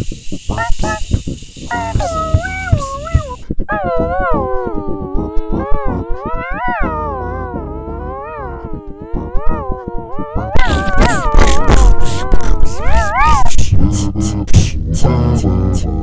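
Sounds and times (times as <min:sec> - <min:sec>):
low vocal rhythm: 0:00.0 - 0:16.0.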